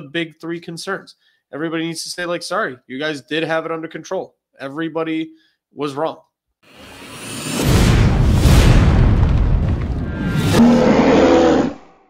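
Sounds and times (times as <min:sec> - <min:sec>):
rushing sweep: 0:06.7 - 0:10.9.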